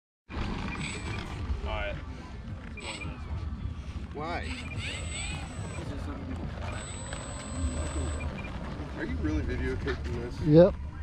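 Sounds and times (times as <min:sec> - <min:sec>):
faint high whine: 0:04.2 - 0:09.2.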